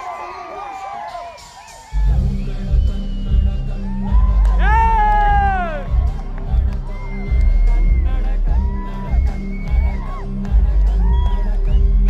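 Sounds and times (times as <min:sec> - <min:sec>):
crowd cheering and whooping: 0:00.0 - 0:12.0
bass-heavy dance track: 0:01.0 - 0:12.0.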